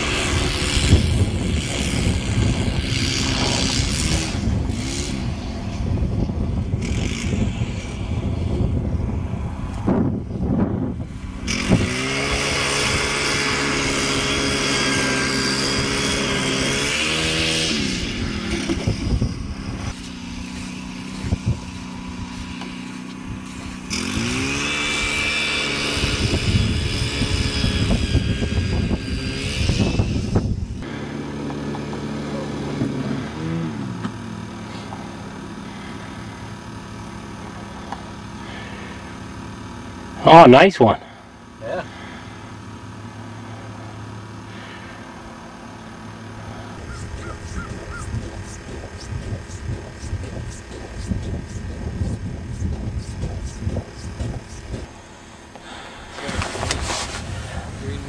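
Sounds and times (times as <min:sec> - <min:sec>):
ice auger engine drilling: 0:00.0 - 0:05.9, 0:06.8 - 0:08.2, 0:11.2 - 0:40.4, 0:41.0 - 0:58.0.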